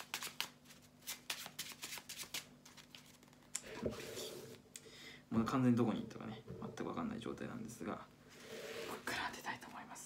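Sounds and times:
playing cards being shuffled: 0.0 - 4.5.

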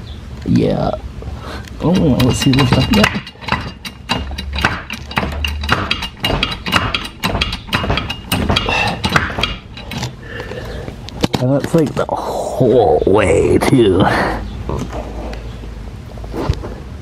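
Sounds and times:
wood framing clicks and creaks: 1.8 - 12.0.

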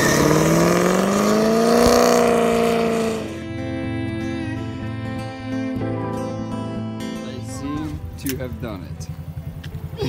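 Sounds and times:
guitar background music: 0.0 - 10.0
dirt bike engine idling: 6.4 - 10.0.

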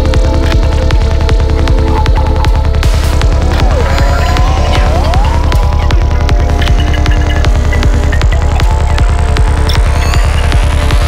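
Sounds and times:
psytrance kick and bass: 0.0 - 11.0.

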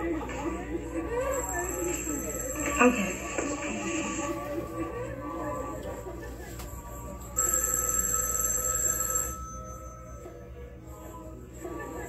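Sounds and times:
telephone bell ringing: 1.1 - 5.7, 6.8 - 11.0.

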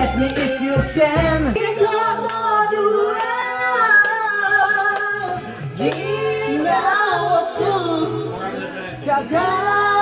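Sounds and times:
women singing karaoke duet: 0.0 - 10.0.

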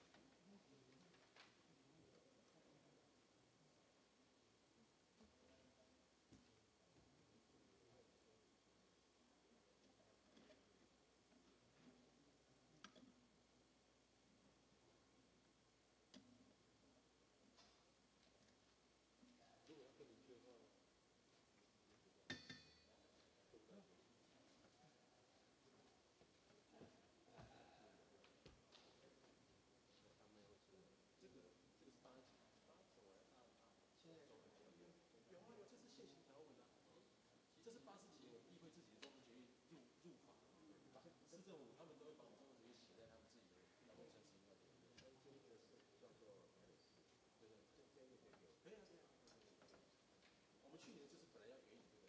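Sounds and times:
faint distant voices: 19.1 - 52.0.

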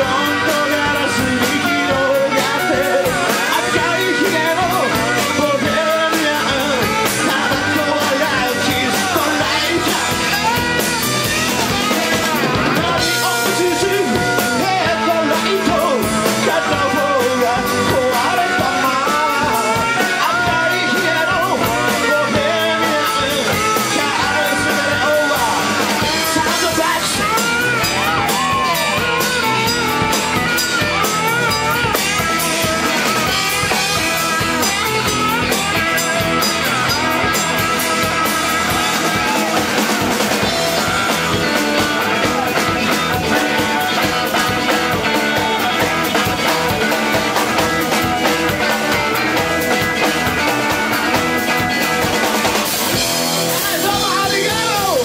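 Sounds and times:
blues-rock band playing: 0.0 - 55.0.

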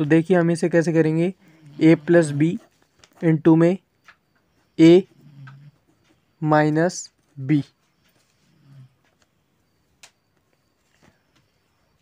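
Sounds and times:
faint ticks: 5.3 - 6.2.

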